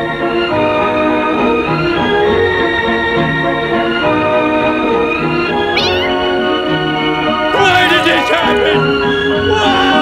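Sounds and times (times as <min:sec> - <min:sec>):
cat meowing: 0:05.7 - 0:06.2.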